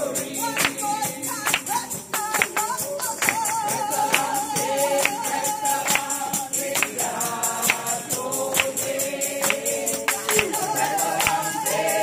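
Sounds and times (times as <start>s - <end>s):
congregation singing: 0.0s - 12.0s
steady struck beat: 3.3s - 12.0s.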